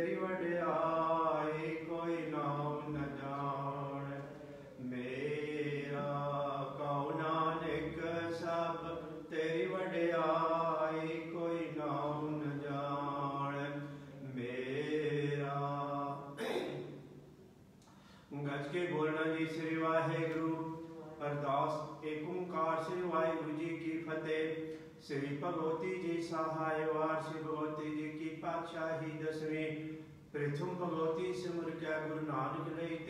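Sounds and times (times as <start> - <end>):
man chanting a prayer: 0.0 - 16.3, 18.3 - 33.0.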